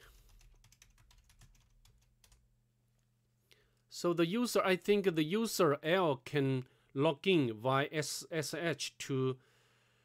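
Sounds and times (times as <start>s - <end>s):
faint keyboard typing: 0.0s - 2.5s.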